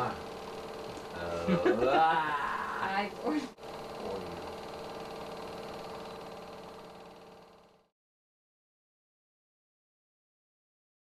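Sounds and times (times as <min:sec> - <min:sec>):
film projector running: 0:00.0 - 0:08.0.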